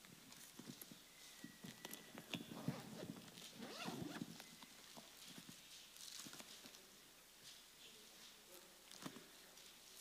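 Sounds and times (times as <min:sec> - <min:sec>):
faint taps and handling noises: 0:00.0 - 0:10.0.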